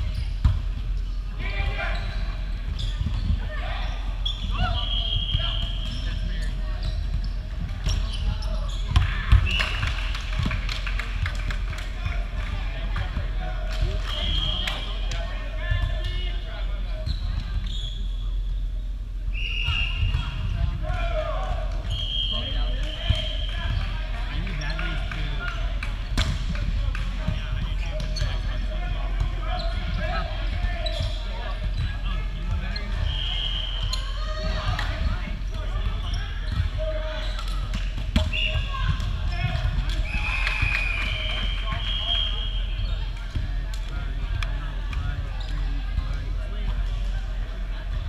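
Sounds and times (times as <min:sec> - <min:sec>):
sneakers squeaking on floor: 0:00.0 - 0:09.7, 0:16.9 - 0:18.6, 0:27.2 - 0:28.6, 0:29.2 - 0:43.2.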